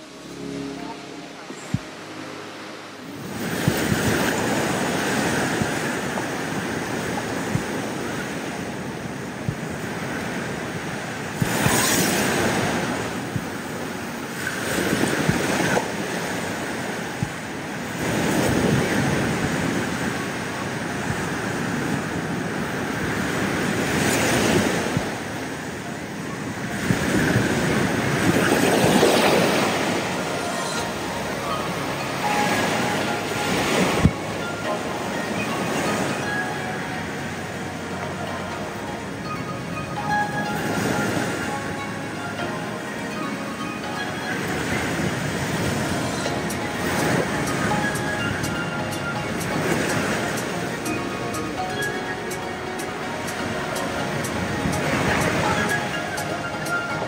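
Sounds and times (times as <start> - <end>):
ocean surf breaking: 0.0 - 57.0.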